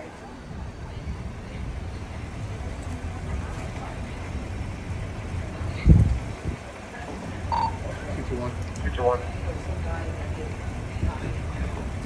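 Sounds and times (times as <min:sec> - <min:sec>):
vehicles idling: 0:00.0 - 0:12.0.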